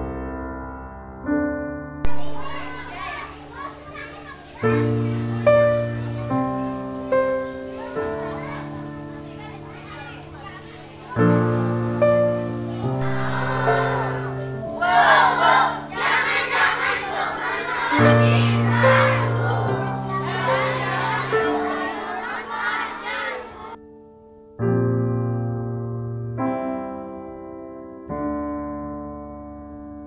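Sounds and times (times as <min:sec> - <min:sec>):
piano music: 0:00.0 - 0:30.0
children chattering and calling: 0:02.1 - 0:23.8.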